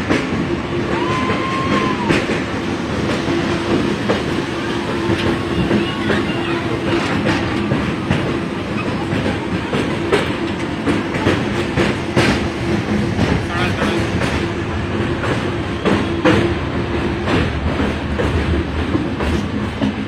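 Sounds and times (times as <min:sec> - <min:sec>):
train wheels rumbling on rails: 0:00.0 - 0:20.0
wheels clicking over rail joints: 0:00.0 - 0:20.0.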